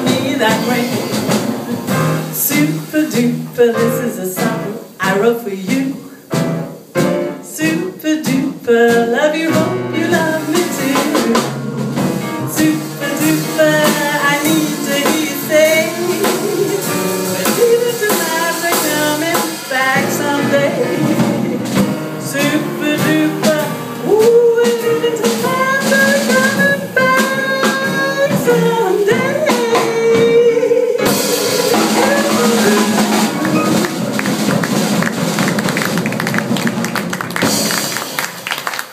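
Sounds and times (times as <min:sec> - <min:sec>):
woman singing: 0:00.0 - 0:01.2, 0:02.3 - 0:06.1, 0:07.4 - 0:11.6, 0:12.4 - 0:33.9
double bass: 0:00.0 - 0:38.2
drum kit: 0:00.0 - 0:38.9
piano: 0:00.0 - 0:38.9
audience applause: 0:31.2 - 0:38.9.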